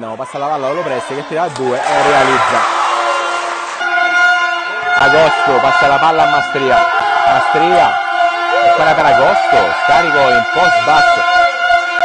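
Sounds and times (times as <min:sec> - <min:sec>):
noisy crowd in gym: 0:00.0 - 0:12.0
held horn tone: 0:01.6 - 0:07.0.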